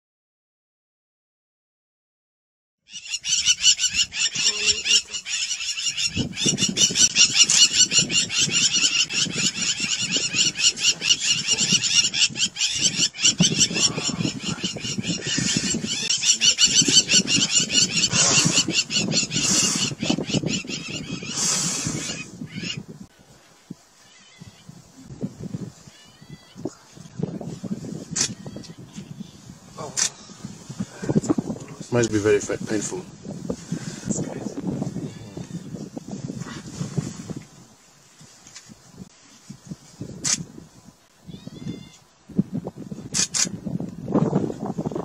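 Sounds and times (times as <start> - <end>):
high-pitched animal calls: 2.9 - 22.8, 41.3 - 42.0.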